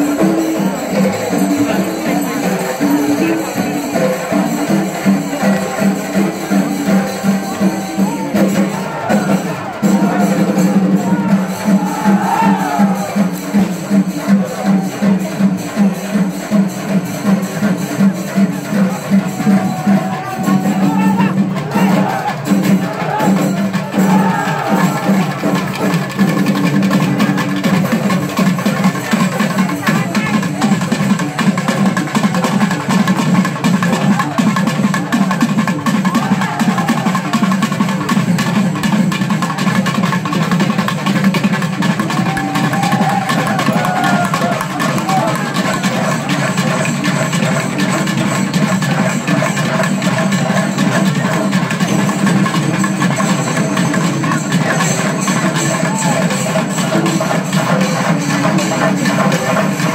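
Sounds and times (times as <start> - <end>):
festival percussion music: 0.0 - 59.9
large crowd din: 0.0 - 59.9.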